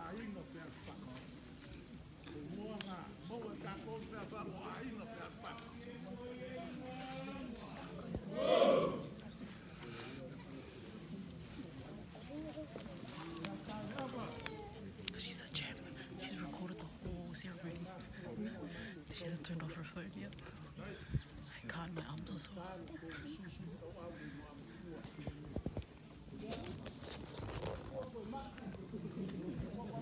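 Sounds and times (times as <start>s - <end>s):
people talking in background: 0.0s - 30.0s
indistinct voices talking: 3.5s - 9.7s.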